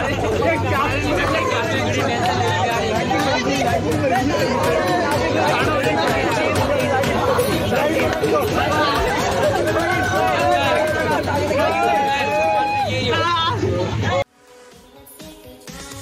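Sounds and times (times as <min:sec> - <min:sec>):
young men talking and laughing: 0:00.0 - 0:14.2.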